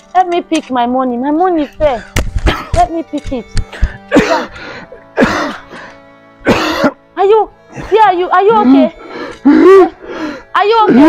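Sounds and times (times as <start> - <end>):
man coughing hard: 2.4 - 2.7, 4.1 - 4.5, 5.2 - 5.6, 6.4 - 7.0.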